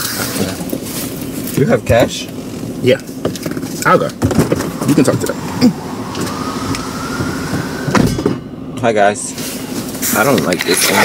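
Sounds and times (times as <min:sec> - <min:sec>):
street noise inside car: 0:00.0 - 0:11.0
faint rising whine: 0:03.8 - 0:09.7.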